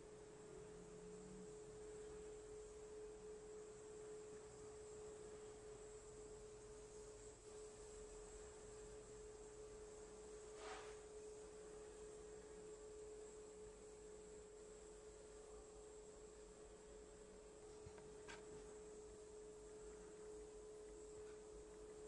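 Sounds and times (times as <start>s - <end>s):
faint steady tone: 0.0s - 22.0s
low hiss: 0.0s - 22.0s.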